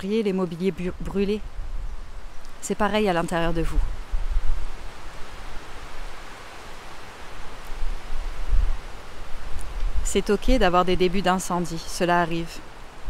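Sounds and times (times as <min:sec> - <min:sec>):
wind buffeting microphone: 0:00.7 - 0:06.2, 0:07.5 - 0:11.4
steady hiss: 0:01.3 - 0:13.0.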